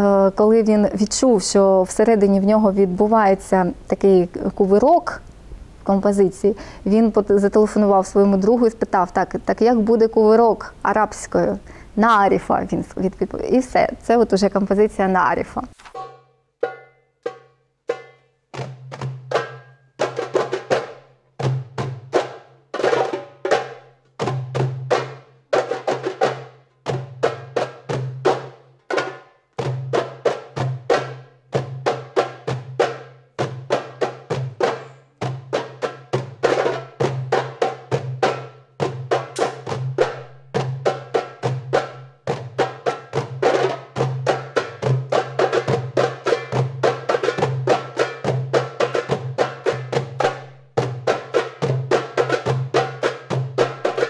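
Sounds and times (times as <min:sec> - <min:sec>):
goblet drums played by hand: 0:15.9 - 0:54.0.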